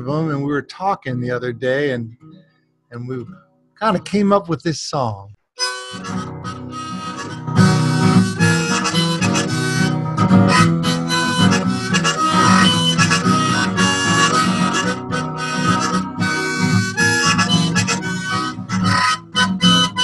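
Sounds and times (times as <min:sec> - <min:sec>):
acoustic guitar: 0:00.0 - 0:04.6, 0:05.6 - 0:20.0
harmonica: 0:05.6 - 0:20.0.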